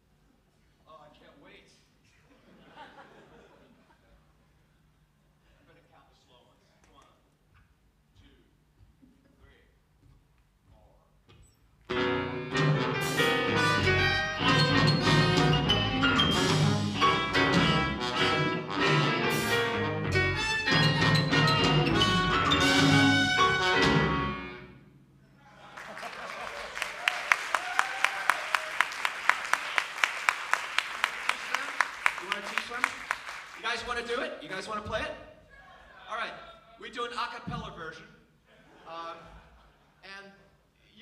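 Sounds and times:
rock band with horns playing: 11.9 - 25.0
audience applause: 25.7 - 33.7.

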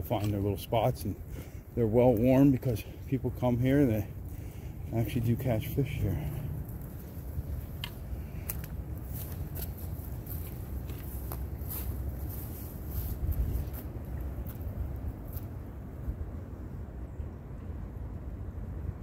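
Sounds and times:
wind buffeting microphone: 1.1 - 15.4
footsteps through grass and brush: 6.2 - 15.6.

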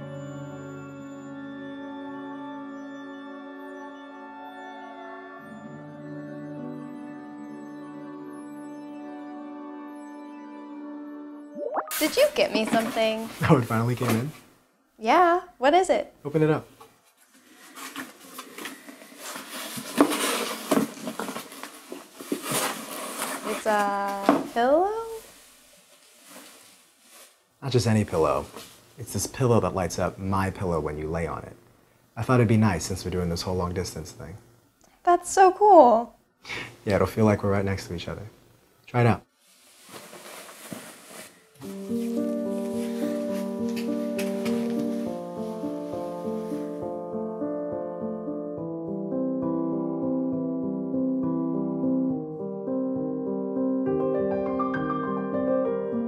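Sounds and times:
wrapping rustling and crinkling: 12.0 - 14.1, 17.1 - 27.5, 39.3 - 46.8
soft piano chords: 41.6 - 56.0.

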